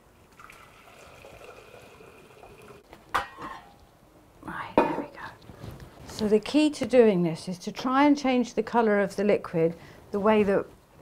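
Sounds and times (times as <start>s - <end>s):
liquid pouring into saucepan: 0.1s - 2.9s
metal pot clunk: 3.1s - 3.7s.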